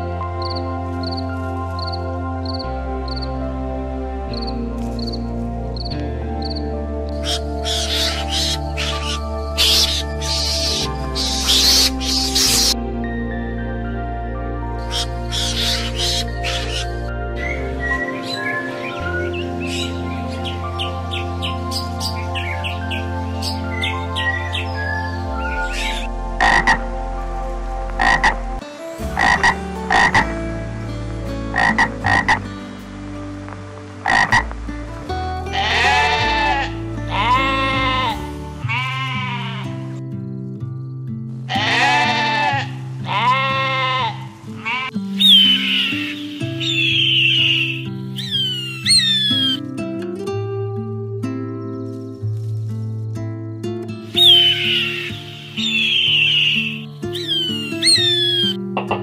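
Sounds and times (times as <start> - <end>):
background music: 0.0 - 59.0
toucan calls: 6.5 - 12.8, 14.8 - 26.8, 29.2 - 30.3, 43.1 - 49.6, 54.0 - 59.0
high thin bird calls: 7.1 - 12.8, 14.8 - 17.6, 44.7 - 49.6, 54.1 - 58.6
goat bleating: 35.5 - 39.9, 41.5 - 46.1.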